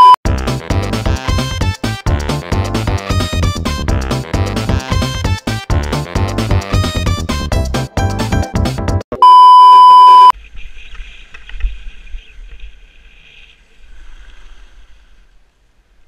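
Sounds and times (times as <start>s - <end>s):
single-pitch electronic beep: 9.2s - 10.3s
skis sliding on snow: 10.4s - 15.4s.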